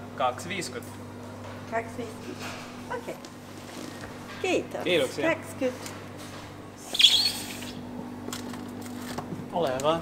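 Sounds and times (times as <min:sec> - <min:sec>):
freezer humming: 0:00.0 - 0:10.0
sliding glass lid squeaking: 0:06.9 - 0:07.8.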